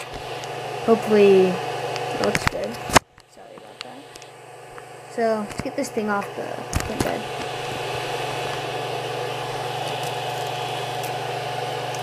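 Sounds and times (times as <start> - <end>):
cooling fans humming: 0.0 - 12.0
faint high whine: 0.0 - 12.0.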